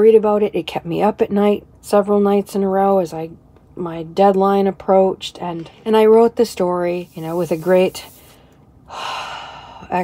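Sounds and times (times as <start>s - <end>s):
woman sighing: 8.9s - 9.9s.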